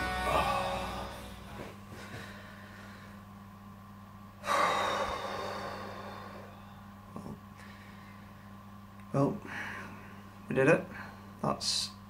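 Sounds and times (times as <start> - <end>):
steady low hum: 0.0 - 12.0
man sighing: 0.1 - 1.5.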